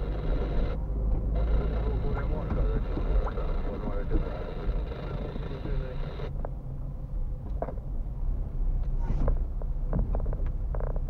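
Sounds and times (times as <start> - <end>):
car engine and tyre noise: 0.0 - 11.0.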